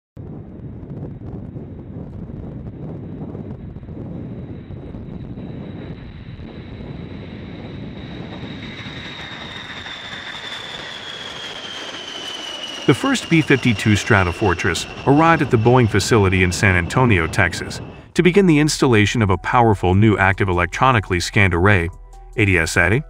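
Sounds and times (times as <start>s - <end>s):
jet engines rumbling with whine: 0.2s - 23.0s.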